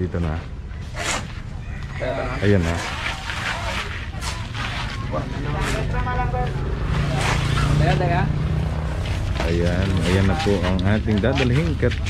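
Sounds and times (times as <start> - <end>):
vehicle engine humming: 0.0 - 12.0
voices talking: 0.0 - 12.0.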